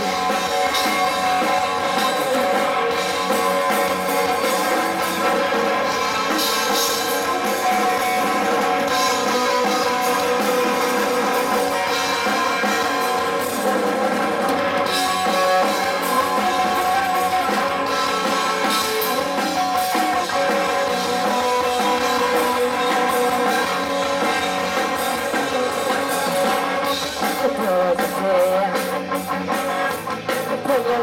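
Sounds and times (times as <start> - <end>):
drum kit: 0.0 - 31.0
electric bass: 0.0 - 31.0
electric guitar: 0.0 - 31.0.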